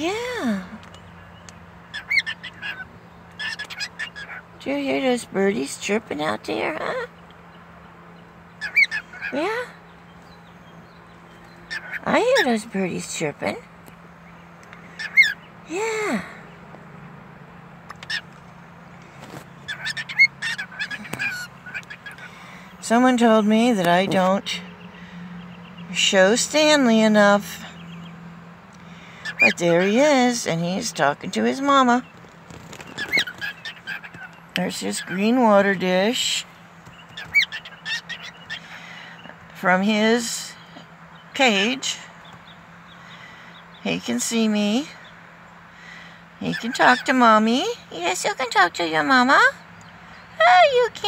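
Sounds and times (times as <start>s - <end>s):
cockatiel chirping: 1.9s - 4.4s, 19.7s - 22.3s, 32.8s - 34.4s, 36.9s - 38.6s.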